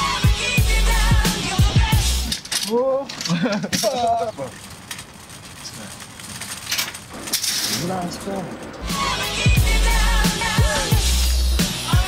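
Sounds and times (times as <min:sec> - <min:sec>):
music with deep bass: 0:00.0 - 0:02.3, 0:08.8 - 0:12.0.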